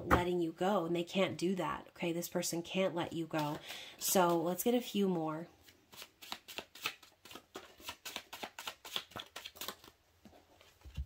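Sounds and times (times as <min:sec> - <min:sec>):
cards being shuffled: 0:03.4 - 0:04.4, 0:05.6 - 0:10.0.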